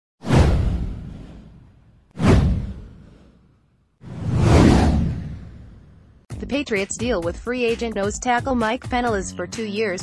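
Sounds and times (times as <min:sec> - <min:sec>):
deep whoosh: 0:00.2 - 0:06.2.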